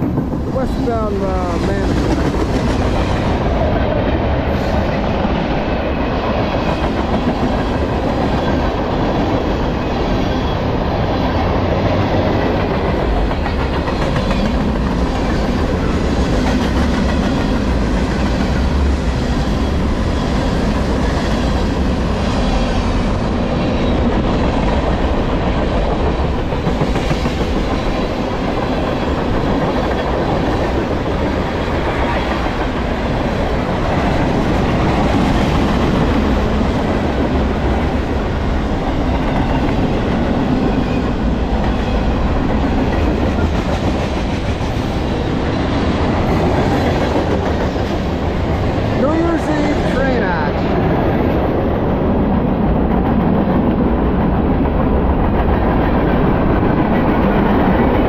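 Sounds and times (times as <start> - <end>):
freight train wheels rumbling on rails: 0.0 - 58.0.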